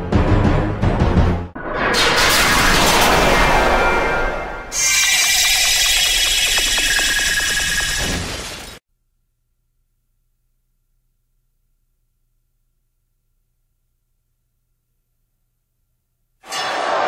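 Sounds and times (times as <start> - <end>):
bright crackling crash: 1.6 - 5.4.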